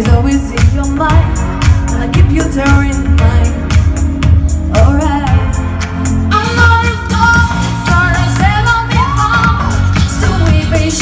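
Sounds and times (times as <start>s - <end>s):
backing track: 0.0s - 11.0s
girl singing pop song: 0.0s - 11.0s.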